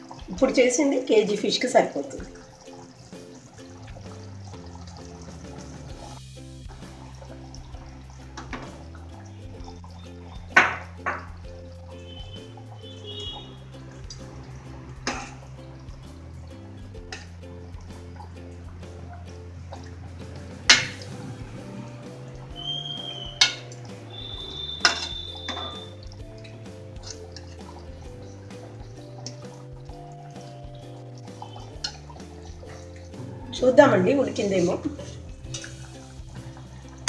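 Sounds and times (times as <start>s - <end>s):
background music with low notes: 0.0s - 37.0s
ladle clinking against metal pot: 15.1s - 15.4s, 22.6s - 29.7s.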